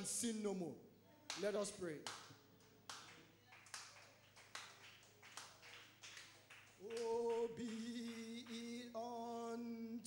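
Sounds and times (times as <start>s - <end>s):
slow hand claps: 2.0s - 8.8s.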